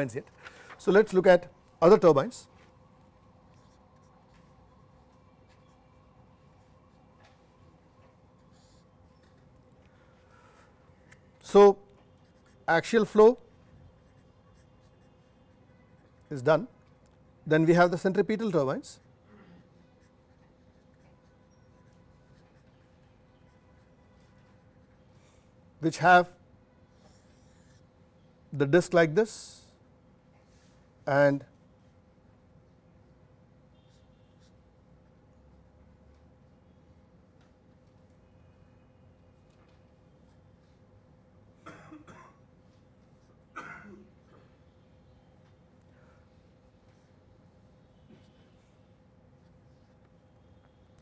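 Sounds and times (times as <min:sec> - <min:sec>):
faint steady hum: 0:00.0 - 0:28.8, 0:31.2 - 0:51.0
marker pen writing on paper: 0:03.5 - 0:06.0, 0:10.4 - 0:16.3, 0:19.8 - 0:25.0
person coughing: 0:19.3 - 0:19.6, 0:41.6 - 0:42.5, 0:43.5 - 0:44.6.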